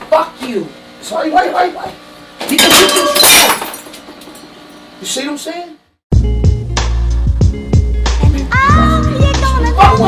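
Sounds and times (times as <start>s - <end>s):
glass smashing: 2.5s - 4.4s
glass shards clinking: 2.5s - 4.5s.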